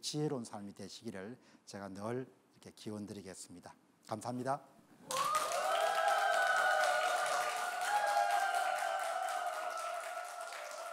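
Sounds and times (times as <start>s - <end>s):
audience applauding: 5.1s - 10.9s.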